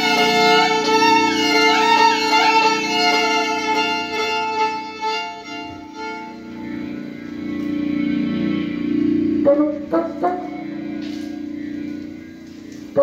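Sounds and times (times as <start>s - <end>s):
low held drone: 0.0s - 13.0s
violin sustained notes: 0.0s - 13.0s.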